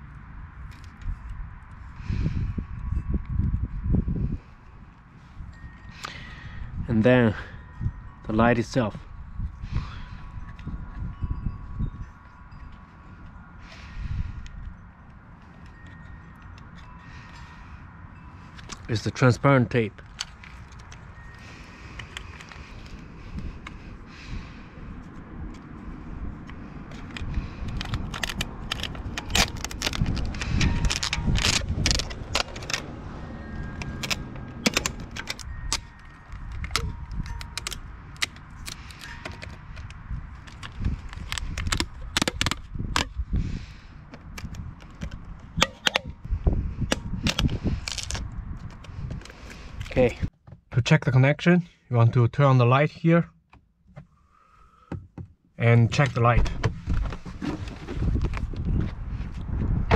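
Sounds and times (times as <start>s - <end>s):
tape ripping off a roll: 27.7s - 32.9s.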